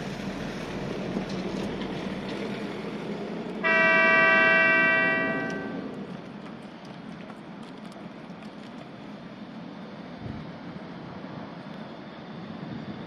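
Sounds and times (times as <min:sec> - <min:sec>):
tram horn chord: 0:03.6 - 0:06.2.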